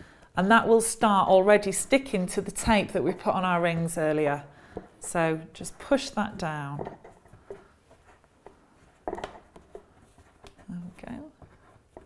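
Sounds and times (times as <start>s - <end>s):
fingers rubbing fabric: 7.1s - 12.0s.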